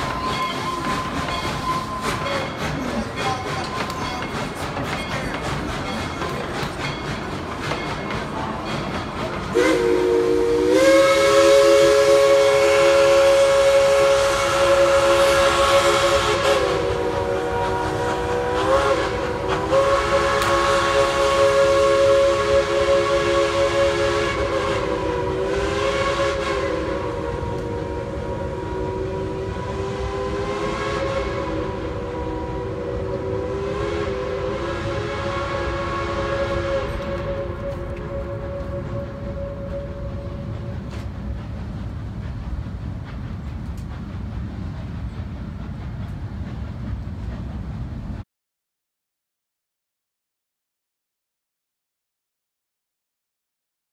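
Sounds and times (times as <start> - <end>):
steam locomotive chime whistle: 0.0 - 41.2
steam train hiss and rumble: 0.0 - 48.2.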